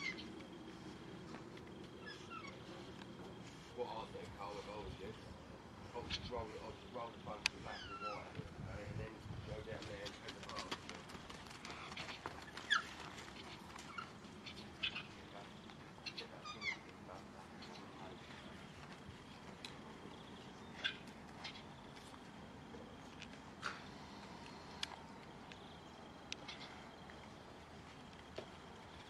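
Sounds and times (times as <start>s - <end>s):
scattered clicks: 7.4s - 7.6s.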